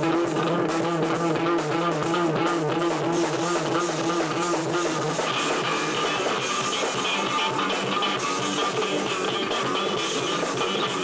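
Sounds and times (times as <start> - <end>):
electric bass playing: 0.0 - 11.0.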